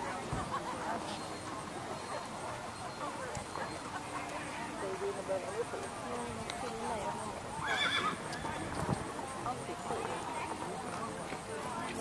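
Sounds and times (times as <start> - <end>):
people talking quietly: 0.0 - 12.0
horse whinnying: 7.6 - 8.5.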